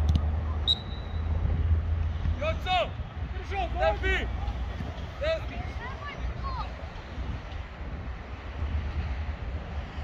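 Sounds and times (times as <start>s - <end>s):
wind buffeting microphone: 1.4s - 10.0s.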